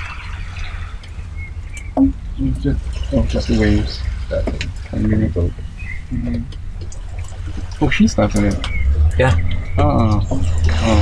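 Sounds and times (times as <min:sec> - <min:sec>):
thin bird chirps: 0:00.0 - 0:10.7
small waves lapping: 0:00.0 - 0:11.0
steady low rumble: 0:00.0 - 0:11.0.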